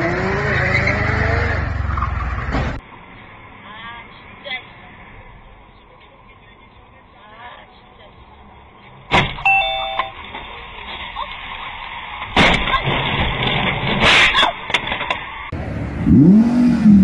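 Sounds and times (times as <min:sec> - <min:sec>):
road noise: 0:00.0 - 0:17.0
car crash impacts: 0:09.1 - 0:09.5, 0:12.2 - 0:15.4
electronic beeps: 0:09.5 - 0:10.2
car engine revving: 0:15.5 - 0:17.0.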